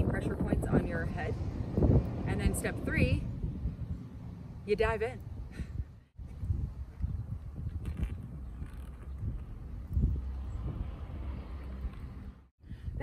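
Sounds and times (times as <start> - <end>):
wind rumbling on microphone: 0.0 - 13.0.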